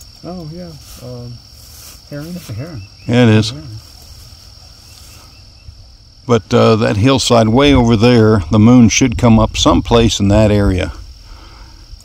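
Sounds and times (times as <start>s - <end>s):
crickets trilling: 0.0s - 12.0s
low microphone rumble: 5.4s - 12.0s.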